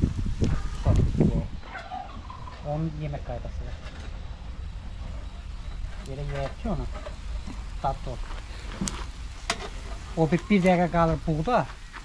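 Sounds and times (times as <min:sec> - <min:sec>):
meat sizzling over charcoal: 0:00.0 - 0:01.6, 0:02.4 - 0:12.0.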